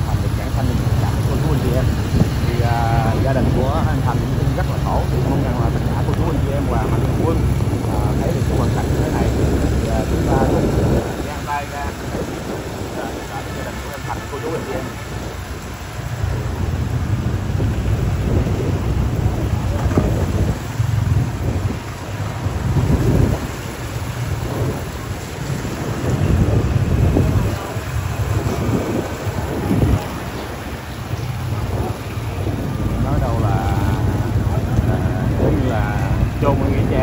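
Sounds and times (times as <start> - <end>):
motorbike engines running: 0.0 - 37.0
wind buffeting microphone: 0.0 - 37.0.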